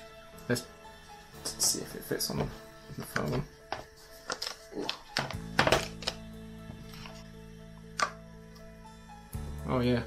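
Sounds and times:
background music sustained chord: 0:00.0 - 0:10.0.

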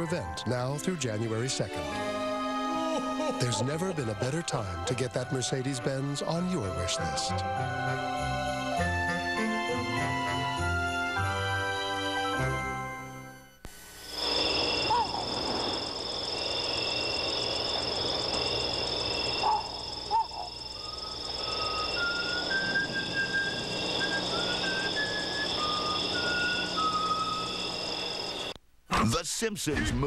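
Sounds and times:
high electronic tones: 0:13.7 - 0:28.6
pulsing beep-like tone: 0:14.4 - 0:28.5.

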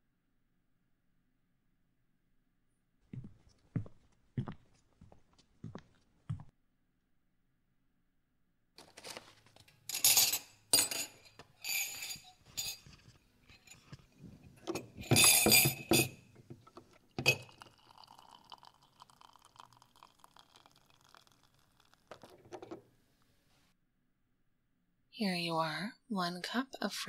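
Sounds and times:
teacups clinking: 0:09.9 - 0:22.9
soft steady sound: 0:12.3 - 0:23.8.

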